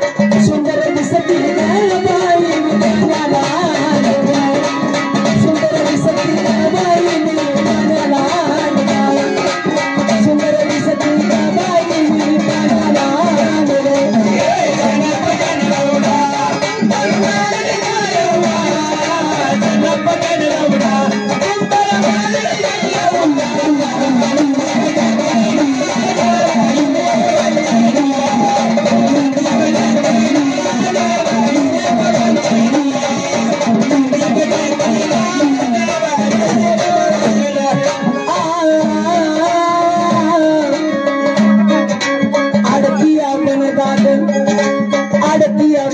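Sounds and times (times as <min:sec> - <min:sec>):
busy percussion: 0:00.0 - 0:45.9.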